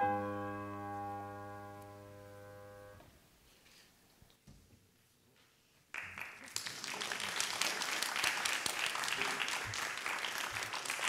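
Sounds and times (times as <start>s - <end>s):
held piano chord: 0.0s - 3.0s.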